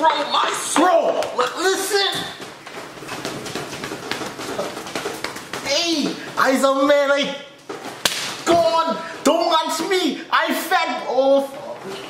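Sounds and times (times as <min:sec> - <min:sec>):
hand claps and smacks: 0:08.0 - 0:08.4.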